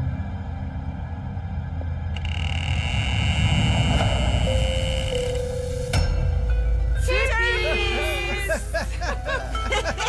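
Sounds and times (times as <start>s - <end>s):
lower held tone: 0.0s - 6.9s
low rumbling drone: 0.0s - 9.5s.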